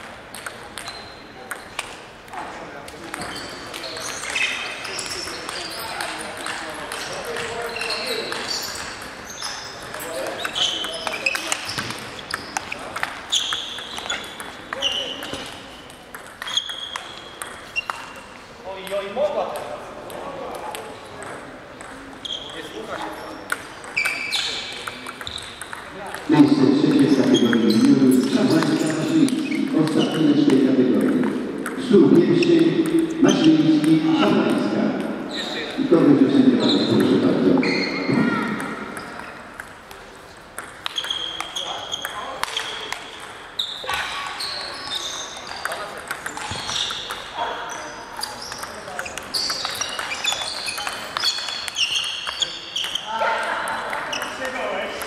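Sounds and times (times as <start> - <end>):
voices in a hall: 0.0 - 55.0
table tennis ball clicking: 8.3 - 18.1, 23.4 - 26.3, 28.5 - 31.8, 38.5 - 43.5, 45.4 - 47.3, 48.2 - 55.0.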